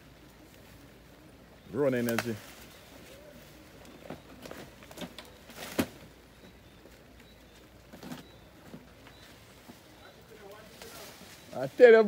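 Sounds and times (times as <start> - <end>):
vines snapping and rustling: 1.8 - 9.5, 10.2 - 11.7
stem cracking: 1.9 - 2.8, 3.8 - 6.2.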